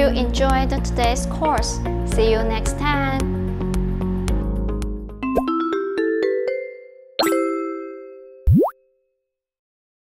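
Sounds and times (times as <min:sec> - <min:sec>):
jingle chime notes: 0:05.2 - 0:08.4
rising plop sound effect: 0:08.5 - 0:08.8.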